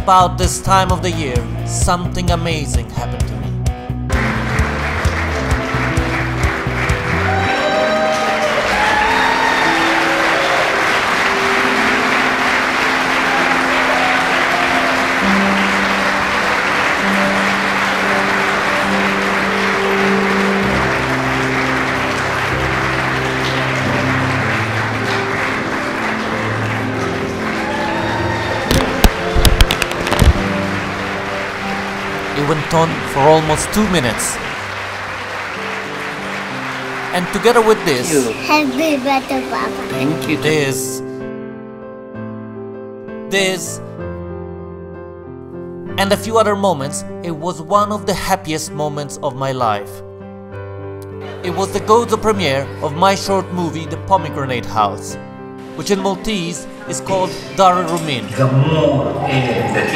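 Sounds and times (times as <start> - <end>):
background music of held notes: 0.0 - 59.9
large audience applauding: 4.1 - 41.0, 59.0 - 59.9.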